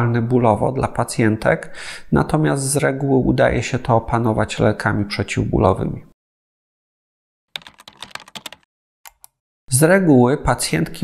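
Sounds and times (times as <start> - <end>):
keyboard key clicks: 7.6 - 9.4.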